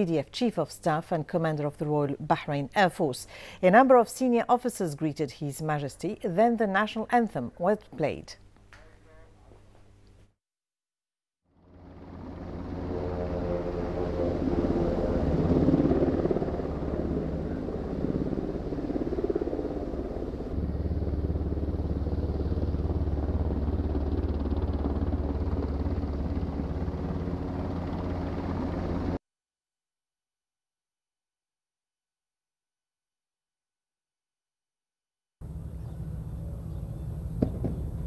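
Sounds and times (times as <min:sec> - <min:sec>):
helicopter engines and rotor: 0:11.5 - 0:29.2, 0:35.4 - 0:38.0.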